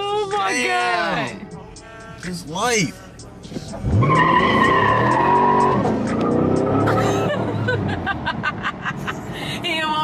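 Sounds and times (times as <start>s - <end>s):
car engine revving: 3.4s - 10.0s
tyres squealing: 3.8s - 6.9s.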